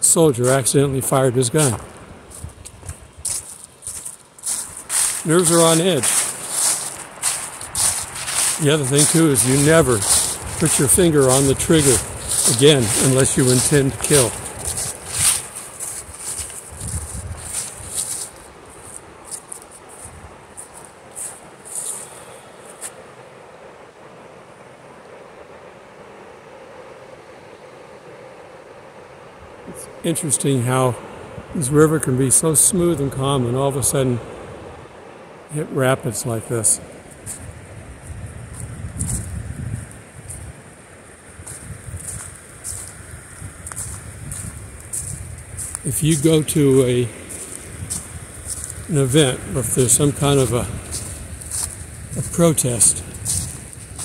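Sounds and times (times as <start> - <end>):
wind buffeting microphone: 0.5 - 21.9, 37.0 - 40.7, 41.3 - 54.0
footsteps crunching dry leaves: 1.6 - 23.0, 37.1 - 40.6, 41.4 - 54.0
crisp rustles: 2.3 - 22.8
river rapids rushing: 3.3 - 16.8.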